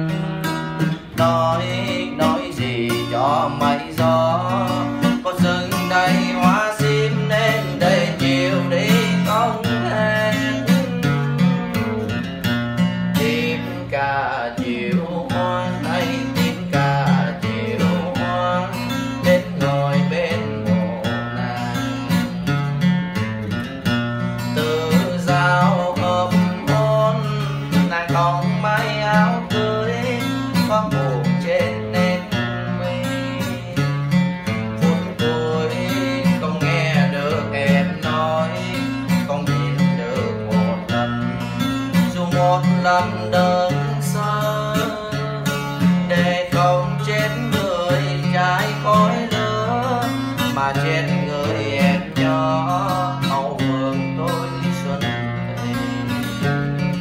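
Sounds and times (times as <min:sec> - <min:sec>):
acoustic guitar instrumental: 0:00.0 - 0:57.0.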